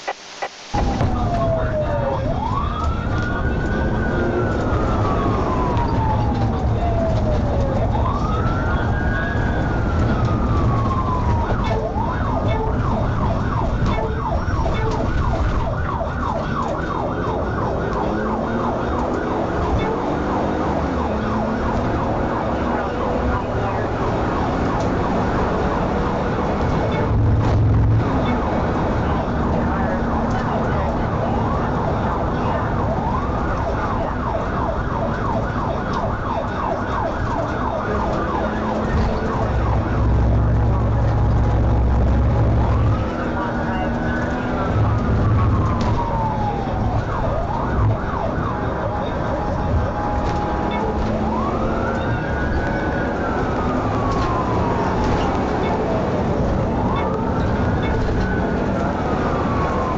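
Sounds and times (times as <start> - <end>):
car engine and tyres rumble: 0.0 - 59.9
police siren: 0.0 - 59.9.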